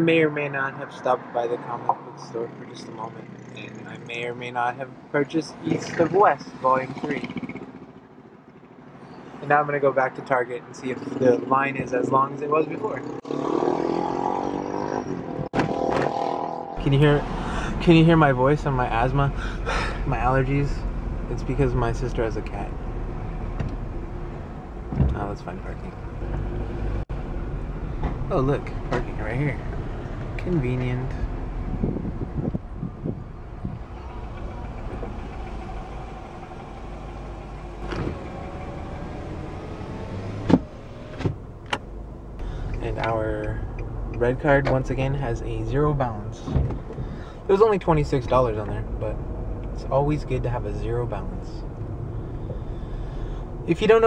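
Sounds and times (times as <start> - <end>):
car engine rumbling: 0.0 - 54.0.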